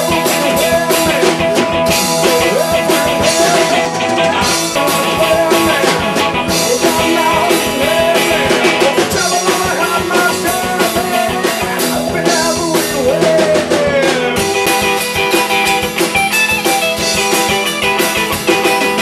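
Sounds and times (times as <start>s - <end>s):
man singing: 0.0s - 14.6s
acoustic guitar: 0.0s - 19.0s
drums: 0.0s - 19.0s
electric guitar: 0.0s - 19.0s.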